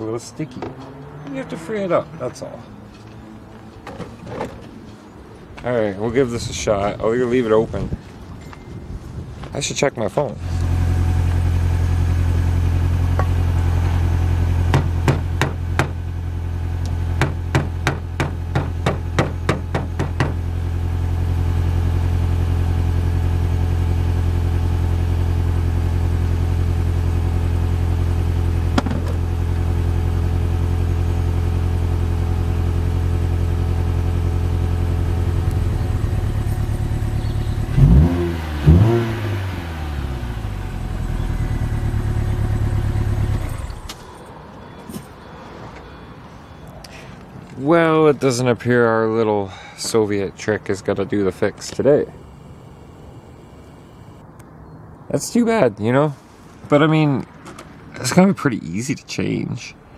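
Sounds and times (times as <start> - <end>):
car engine idling: 10.2 - 45.3
engine revving bursts: 34.0 - 44.0.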